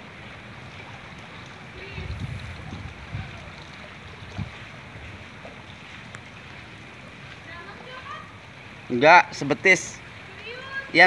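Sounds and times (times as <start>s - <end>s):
floodwater rushing: 0.0s - 11.0s.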